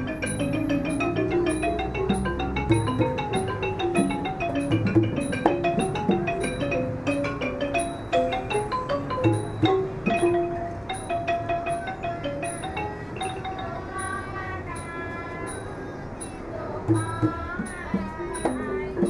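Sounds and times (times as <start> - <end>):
xylophone playing quick runs: 0.0 - 14.9.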